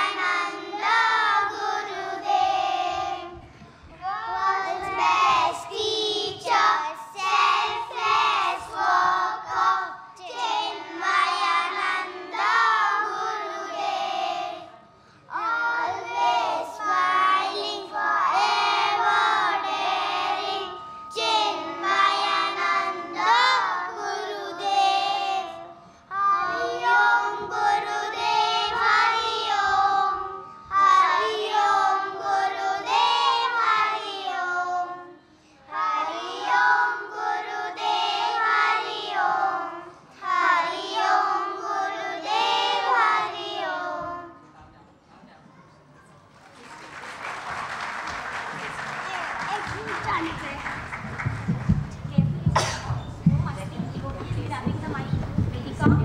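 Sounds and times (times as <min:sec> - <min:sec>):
children singing devotional song: 0:00.0 - 0:44.4.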